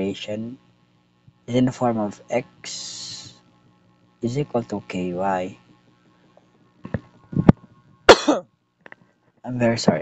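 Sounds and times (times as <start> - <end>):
man coughing: 8.1 - 8.4.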